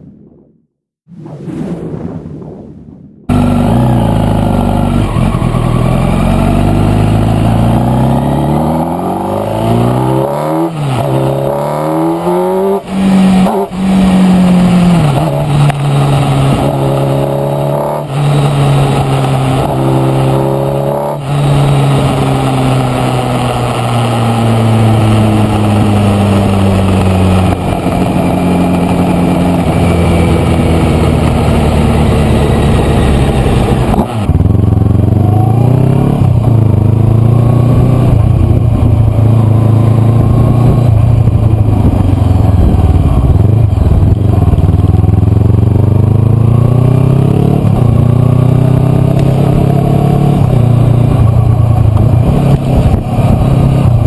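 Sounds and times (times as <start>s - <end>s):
motorcycle engine revving: 3.3s - 54.0s.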